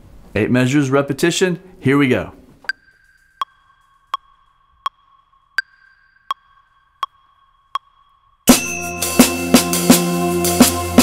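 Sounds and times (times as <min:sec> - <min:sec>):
electronic metronome clicking: 0:02.7 - 0:08.5.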